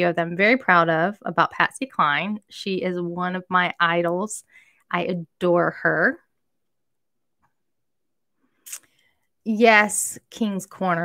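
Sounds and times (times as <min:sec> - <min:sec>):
faint mouth click: 0:08.6 - 0:09.0.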